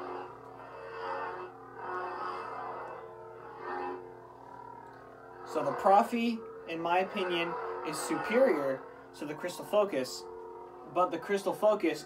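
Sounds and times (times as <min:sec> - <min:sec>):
lightsaber hum: 0:00.0 - 0:12.0.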